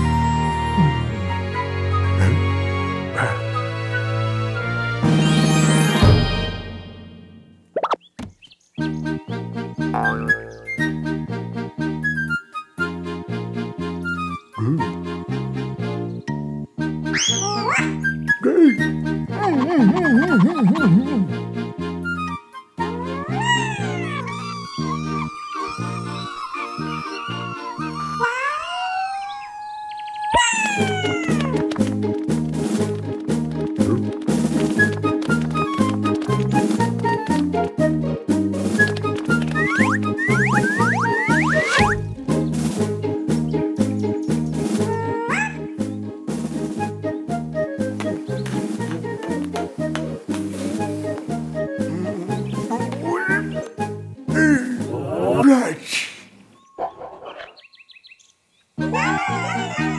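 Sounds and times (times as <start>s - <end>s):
bouncy cartoon music: 0.0s - 8.0s, 8.8s - 29.3s, 30.3s - 55.6s, 58.8s - 59.9s
cartoon ogre vocalising: 3.1s - 3.5s, 14.6s - 15.0s, 22.9s - 31.6s, 44.8s - 45.7s, 50.5s - 53.6s, 54.3s - 56.0s, 58.8s - 59.9s
cartoon high blips: 10.0s - 10.9s, 39.7s - 42.0s.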